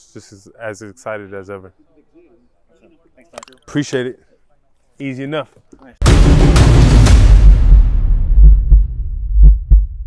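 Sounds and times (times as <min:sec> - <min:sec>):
deep bass thumps: 0:06.0 - 0:10.0
low rumble: 0:07.0 - 0:10.0.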